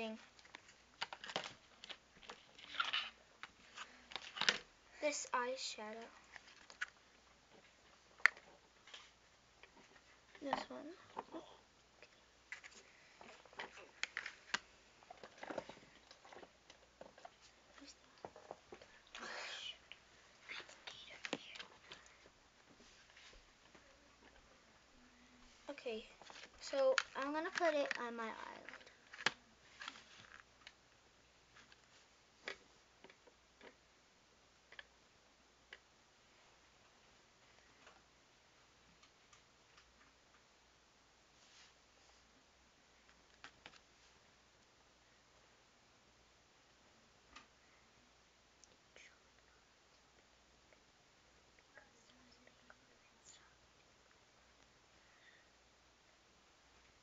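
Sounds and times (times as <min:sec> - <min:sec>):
person whispering: 0:19.1 - 0:22.1, 0:48.7 - 0:49.7, 0:51.6 - 0:53.7.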